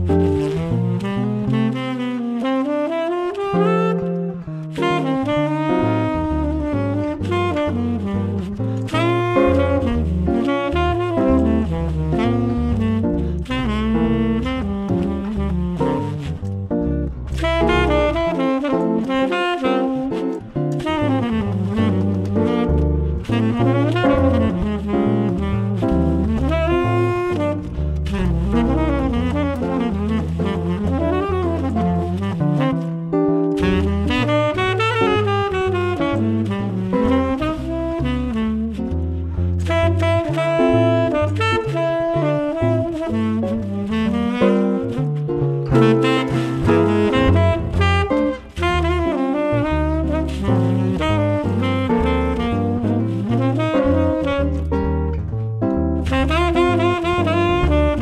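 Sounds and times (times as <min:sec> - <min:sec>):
jazz tenor saxophone melody: 0:00.0 - 0:58.0
low bass notes: 0:00.0 - 0:58.0.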